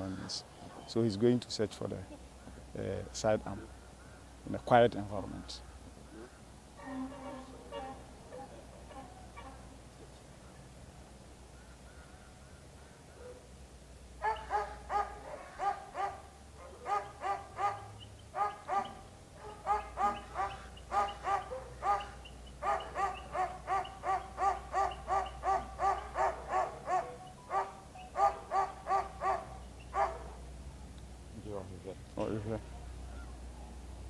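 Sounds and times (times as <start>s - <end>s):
dog barking: 13.2s - 13.4s, 14.2s - 30.4s.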